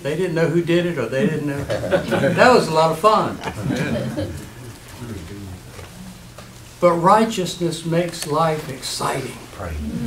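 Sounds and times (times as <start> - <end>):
sermon speech: 0.0 - 3.4, 6.8 - 10.0.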